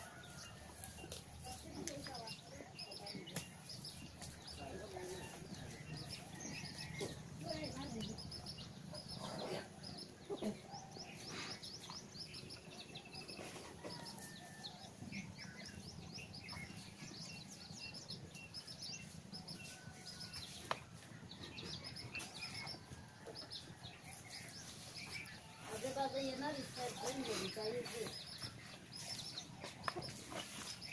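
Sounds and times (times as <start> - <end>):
small birds chirping: 0.0 - 30.9.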